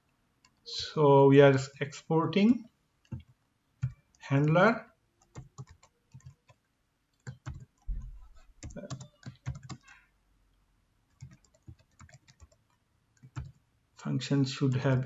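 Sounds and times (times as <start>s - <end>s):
computer keyboard typing: 3.0s - 4.5s, 5.2s - 6.6s, 7.2s - 10.0s, 11.1s - 13.6s.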